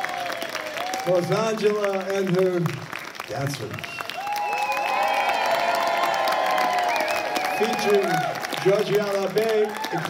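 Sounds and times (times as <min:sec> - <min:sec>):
crowd whooping and calling: 0:00.0 - 0:01.3, 0:04.0 - 0:10.0
audience applauding: 0:00.0 - 0:10.0.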